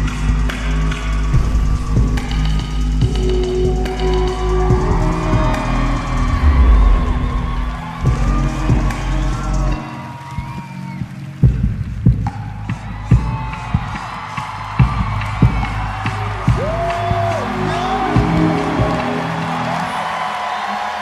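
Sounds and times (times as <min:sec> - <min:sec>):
audience cheering: 0:00.1 - 0:21.0.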